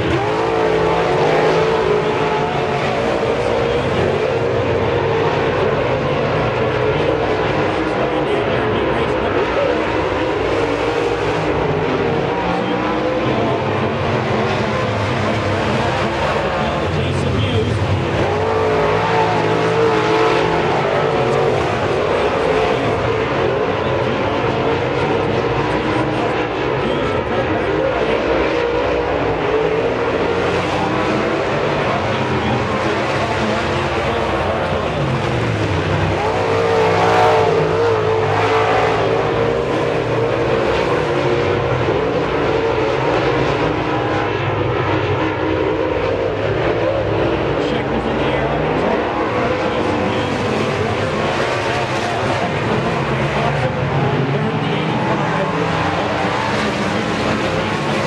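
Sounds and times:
race car engines roaring: 0.0 - 58.0.

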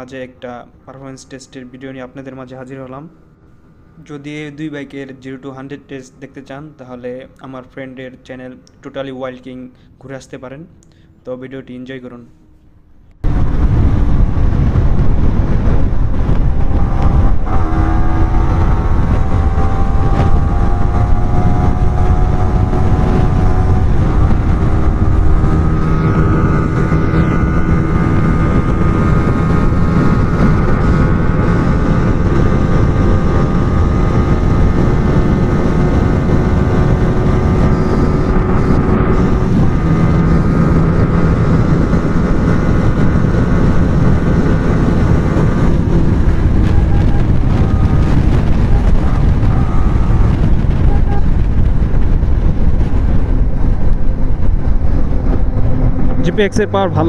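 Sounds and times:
motorcycle engine at high revs: 13.2 - 57.0
wind buffeting microphone: 13.2 - 57.0.

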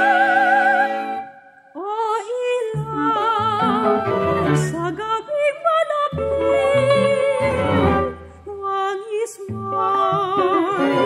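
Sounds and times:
plucked violin notes: 2.3 - 11.0
chamber ensemble playing: 2.8 - 5.0, 6.1 - 8.3.

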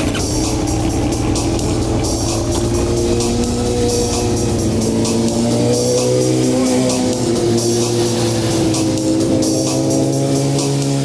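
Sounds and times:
background music with drum beat: 0.0 - 11.0
motorcycle engines accelerating: 0.0 - 11.0.

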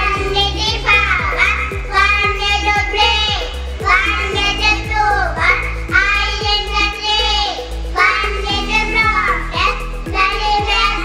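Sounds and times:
backing music with steady beat: 0.0 - 11.0
children singing into a microphone: 0.0 - 11.0.

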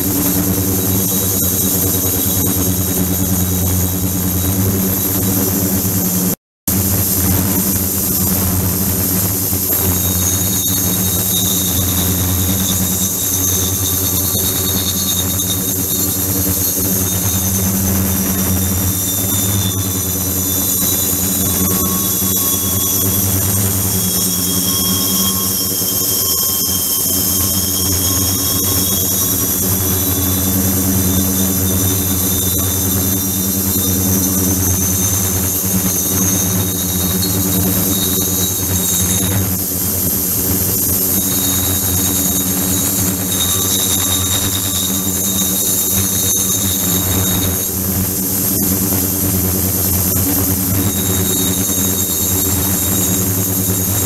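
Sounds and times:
high whine: 0.0 - 54.0
machine hum: 0.0 - 54.0.

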